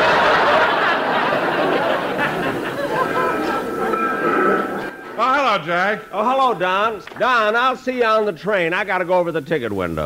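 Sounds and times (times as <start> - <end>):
audience laughter: 0.0 - 5.2
crowd chatter: 0.0 - 6.1.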